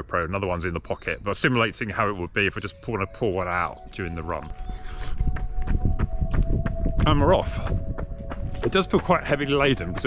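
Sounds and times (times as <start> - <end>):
running footsteps on tarmac: 4.9 - 10.0.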